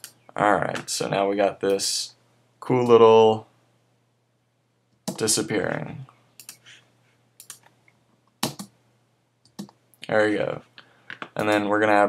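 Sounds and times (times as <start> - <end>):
computer keys clicking: 6.4 - 6.6, 7.4 - 7.7, 8.4 - 8.7, 9.4 - 9.8.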